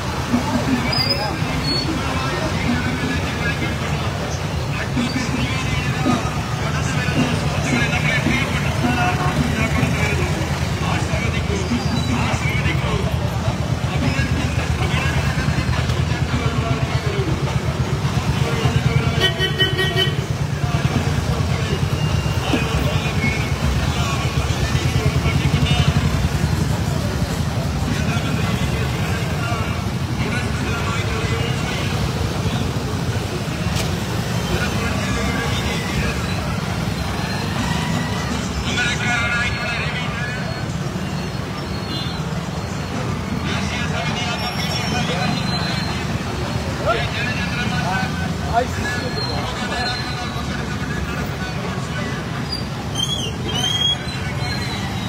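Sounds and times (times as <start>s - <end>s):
motorcycle and scooter engines droning: 0.0s - 55.0s
people's voices and calls: 0.0s - 55.0s.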